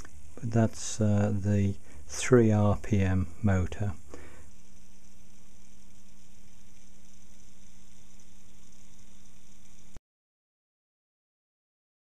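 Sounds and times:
constant hiss: 0.0s - 10.0s
low electrical hum: 0.0s - 10.0s.

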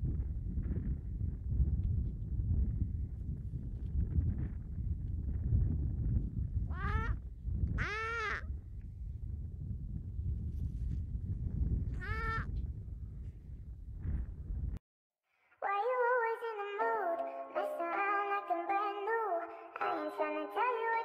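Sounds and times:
wind noise on microphone: 0.0s - 14.8s
seal pup calling: 6.7s - 7.2s, 7.8s - 8.4s.

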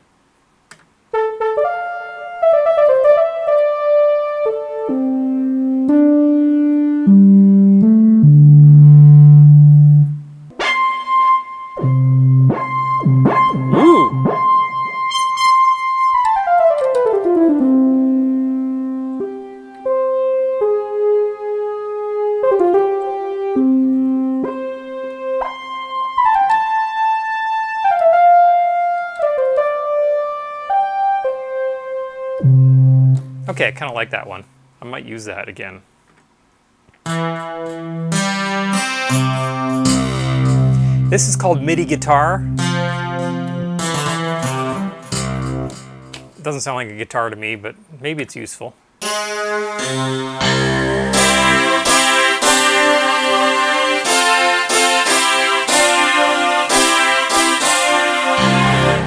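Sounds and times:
synthesizer notes and chords: 1.1s - 34.7s, 37.0s - 46.6s, 49.0s - 59.0s.

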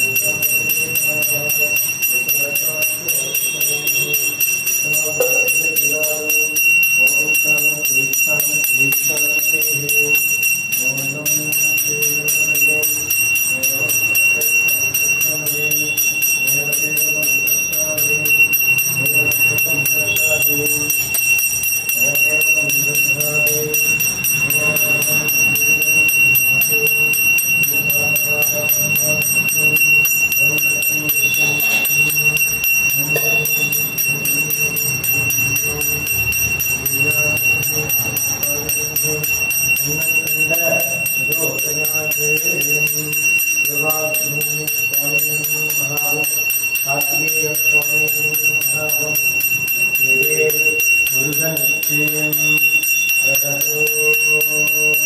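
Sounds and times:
brass hand bell ringing: 0.0s - 55.0s
man chanting: 0.0s - 55.0s.

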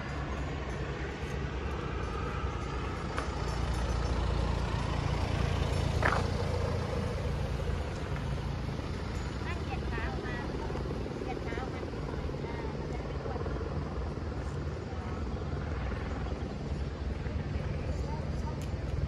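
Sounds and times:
low mechanical drone: 0.0s - 19.0s.

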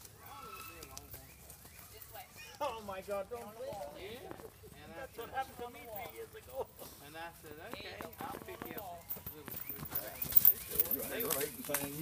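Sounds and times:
horse hoofbeats on soft dirt: 0.0s - 12.0s.

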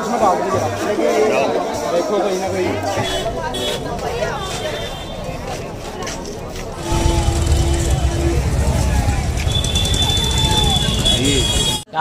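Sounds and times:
loud low rumble: 6.7s - 11.1s.

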